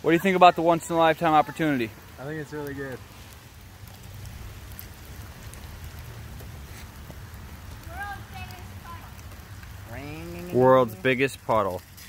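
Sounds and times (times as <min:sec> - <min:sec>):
light rain hiss: 0:00.0 - 0:12.0
raindrop ticks: 0:00.0 - 0:12.0.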